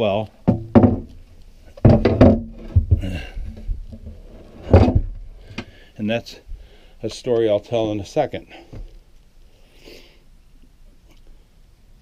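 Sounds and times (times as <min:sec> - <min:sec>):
wooden hatch knocks and thumps: 0:00.4 - 0:01.2, 0:01.8 - 0:05.7.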